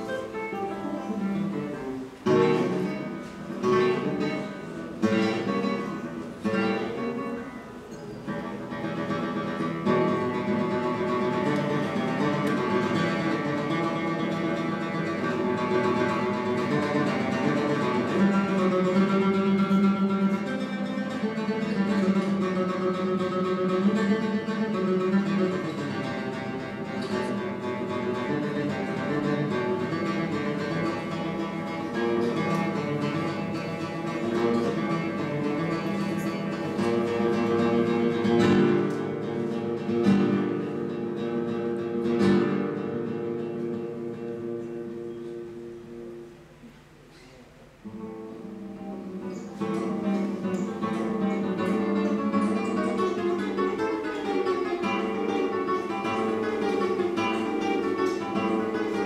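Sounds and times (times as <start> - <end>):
classical guitar fingerstyle: 0.0 - 59.0.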